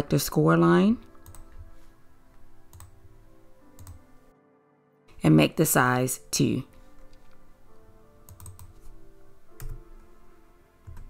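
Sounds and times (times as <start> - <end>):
soft background music: 0.0 - 11.0
keyboard keystrokes: 1.2 - 1.6, 2.7 - 2.9, 3.8 - 4.0, 8.3 - 8.8, 9.6 - 9.8.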